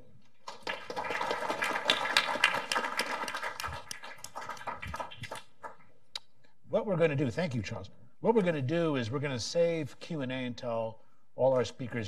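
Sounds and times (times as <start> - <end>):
audience clapping: 0.3 - 6.0.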